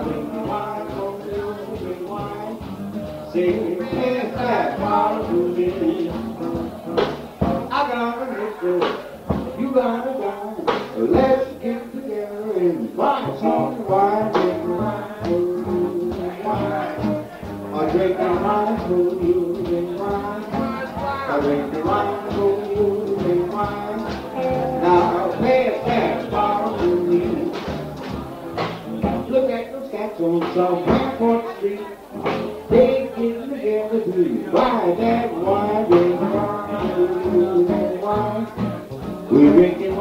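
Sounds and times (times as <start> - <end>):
jazz band playing: 0.0 - 40.0
sliding bending melody line: 13.3 - 28.9.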